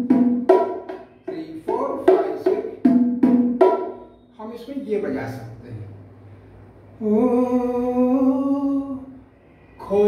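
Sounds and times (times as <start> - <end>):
bongos played by hand: 0.0 - 4.2.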